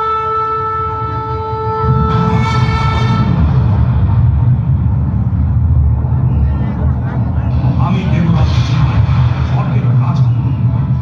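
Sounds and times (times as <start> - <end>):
wind instrument note: 0.0 - 3.9
low rumbling noise: 0.0 - 11.0.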